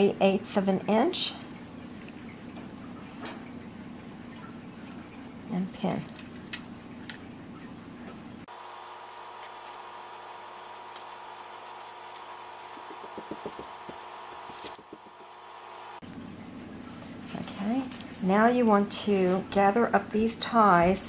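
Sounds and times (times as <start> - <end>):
steady background hum: 0.0 - 21.0.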